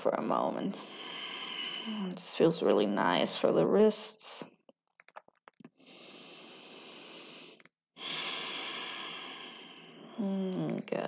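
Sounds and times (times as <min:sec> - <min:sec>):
person breathing: 0:00.8 - 0:02.0, 0:05.8 - 0:10.2.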